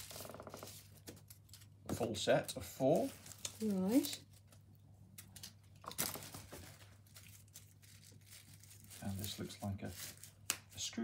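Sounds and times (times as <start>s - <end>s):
packaging wrappers crinkling: 0.0s - 10.8s.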